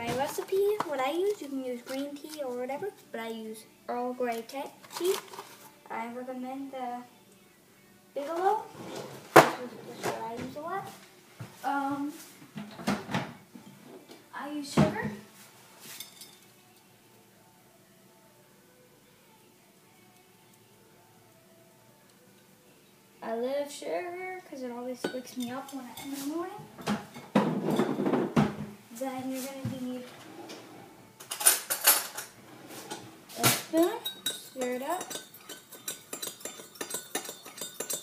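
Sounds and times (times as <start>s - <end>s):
metal cutlery clattering: 31.2s - 38.0s
glass jar clinking: 34.0s - 38.0s.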